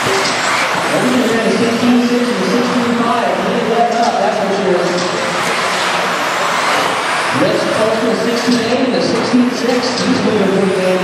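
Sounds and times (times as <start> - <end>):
rc car motors whirring: 0.0 - 11.0
announcer voice echoing: 0.8 - 5.5, 7.3 - 11.0.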